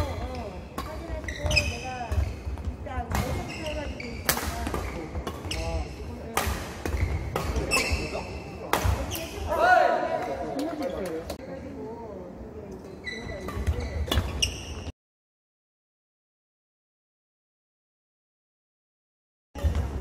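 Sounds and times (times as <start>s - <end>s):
shoes squeaking on wooden floor: 1.0s - 4.2s, 7.0s - 8.4s, 13.0s - 14.9s
rackets striking shuttlecock: 3.1s - 5.6s.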